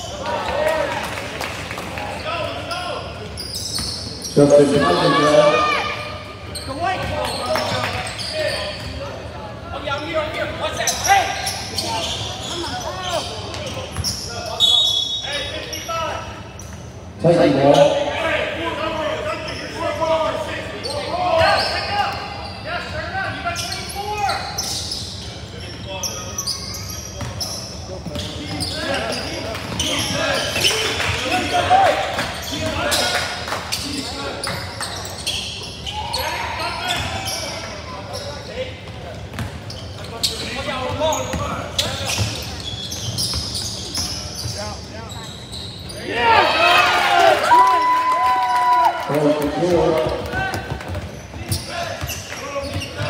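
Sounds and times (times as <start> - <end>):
people shouting in a gym: 4.2 - 7.8, 17.8 - 24.6, 35.8 - 38.0, 46.0 - 49.7.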